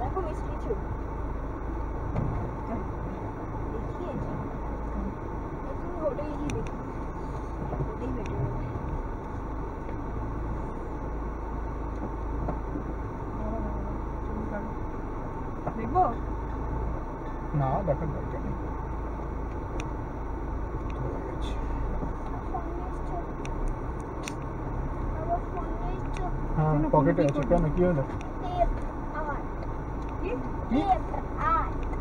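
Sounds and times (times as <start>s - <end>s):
car driving on gravel: 0.0s - 32.0s.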